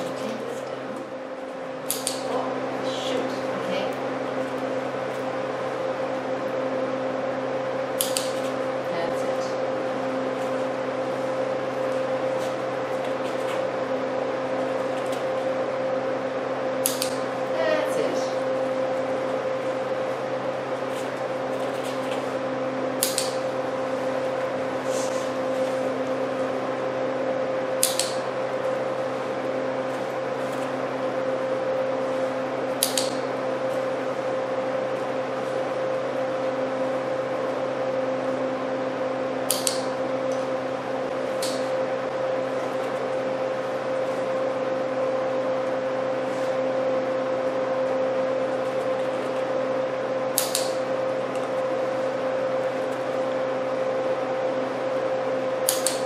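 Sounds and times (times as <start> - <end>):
steady low hum: 0.0 - 56.0
clicker clicks: 1.8 - 2.3, 8.0 - 8.5, 16.8 - 17.2, 23.0 - 23.4, 27.8 - 28.2, 32.8 - 33.2, 39.5 - 39.9, 50.4 - 50.8, 55.6 - 56.0.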